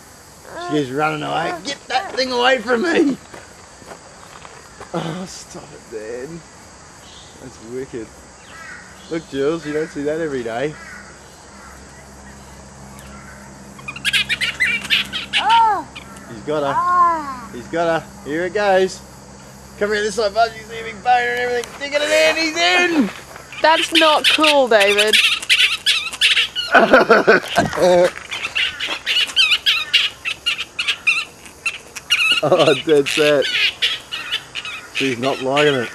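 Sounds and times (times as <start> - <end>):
steady low hum: 0.0 - 35.9
bats squawking and chattering: 0.3 - 35.9
man laughing loudly: 5.0 - 5.4, 22.0 - 23.1, 26.7 - 28.2, 32.3 - 33.2.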